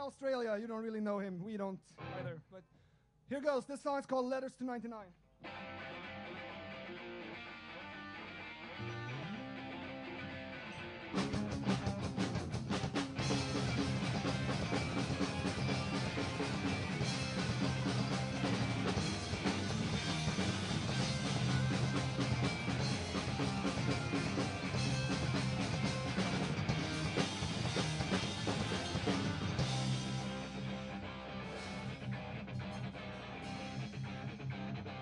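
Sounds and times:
electric guitar: 0:05.4 - 0:35.0
drums and full band: 0:11.1 - 0:35.0.

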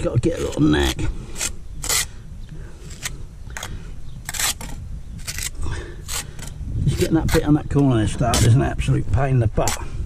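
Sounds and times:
trowel scraping mortar: 0:00.2 - 0:02.1, 0:02.9 - 0:08.7.

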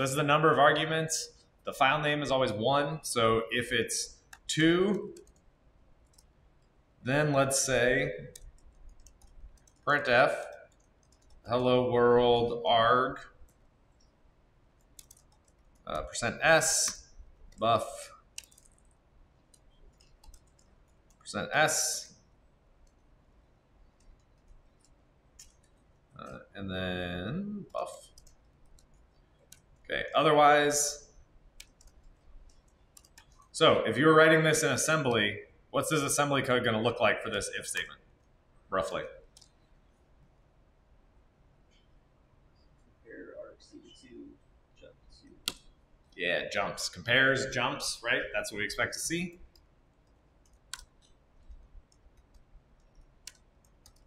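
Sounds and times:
computer keyboard clicks: 0:08.3 - 0:09.8, 0:10.4 - 0:11.5, 0:15.0 - 0:15.8, 0:18.4 - 0:21.2, 0:24.0 - 0:25.8, 0:27.8 - 0:29.8, 0:31.6 - 0:33.5, 0:49.5 - 0:54.0.

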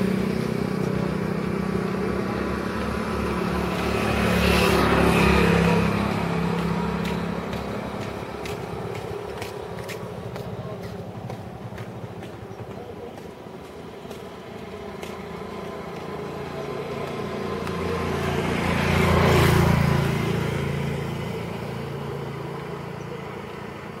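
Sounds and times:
vehicle passing on road: 0:00.0 - 0:24.0.

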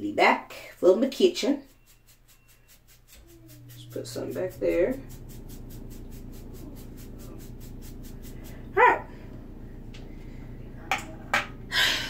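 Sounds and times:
toothbrush brushing through hair: 0:00.7 - 0:08.8
low steady hum: 0:01.4 - 0:12.0.

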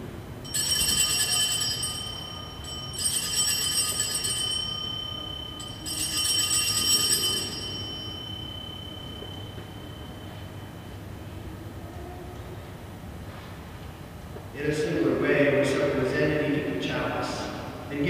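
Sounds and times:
altar bells jangling: 0:00.4 - 0:11.2.

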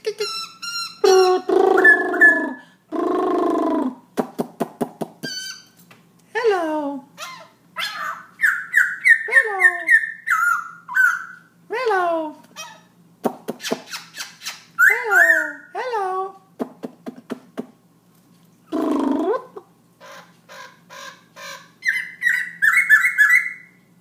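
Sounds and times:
laughingthrush singing: 0:01.0 - 0:04.1.

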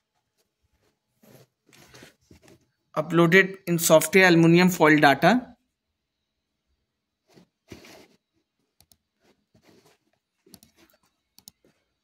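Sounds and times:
computer mouse clicks: 0:08.8 - 0:09.1, 0:10.4 - 0:11.8.

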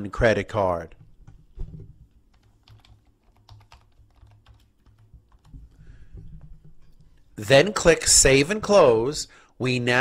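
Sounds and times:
keyboard typing: 0:01.0 - 0:05.8.

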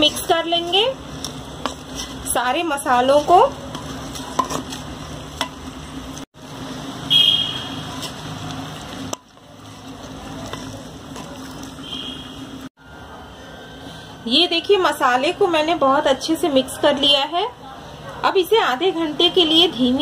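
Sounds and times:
wooden spoon scraping thick mix: 0:00.0 - 0:05.2, 0:07.8 - 0:11.8.

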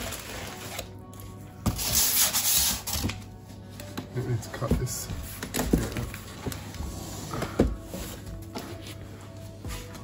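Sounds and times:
background music: 0:00.0 - 0:10.0
cardboard box scraping on tiled floor: 0:06.8 - 0:08.3.

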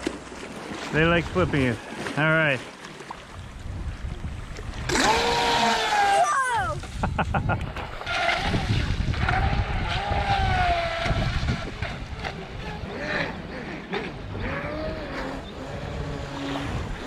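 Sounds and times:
wind rumble on microphone: 0:03.4 - 0:17.0
rc boat motor whining: 0:04.9 - 0:06.7, 0:08.0 - 0:17.0.

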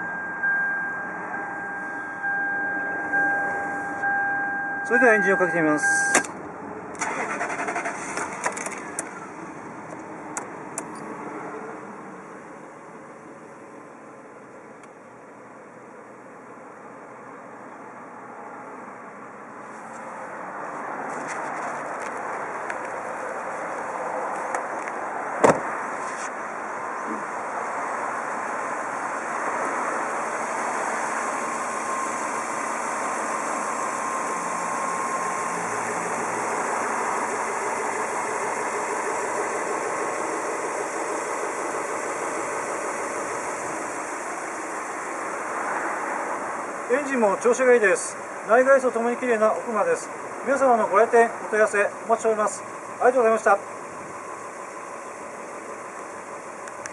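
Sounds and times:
car engine idling: 0:00.0 - 0:56.9
sharp knock: 0:25.4 - 0:25.7.

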